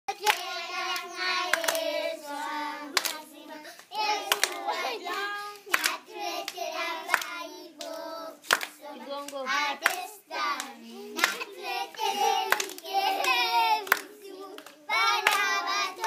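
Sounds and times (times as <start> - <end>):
children clapping hands: 0.1 - 2.2, 2.8 - 16.0
children singing together: 0.1 - 16.0.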